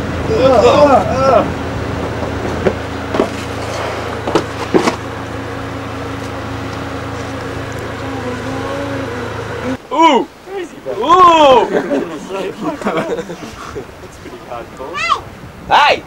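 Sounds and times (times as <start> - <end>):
low mechanical hum: 0.0 - 15.7.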